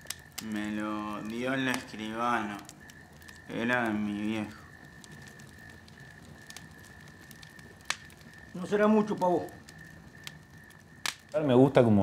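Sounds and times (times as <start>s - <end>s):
wood fire crackling: 0.0s - 12.0s.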